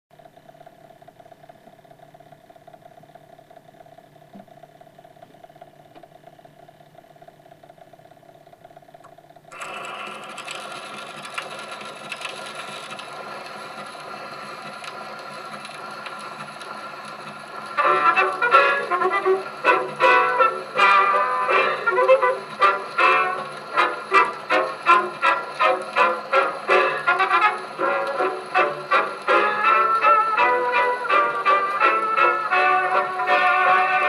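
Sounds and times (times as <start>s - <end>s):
turntable hum: 0.2s - 34.0s.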